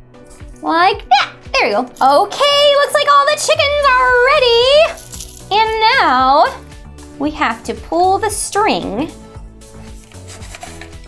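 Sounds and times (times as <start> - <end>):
quiet background music: 0.0 - 11.0
cloth rubbing against plastic: 9.7 - 11.0.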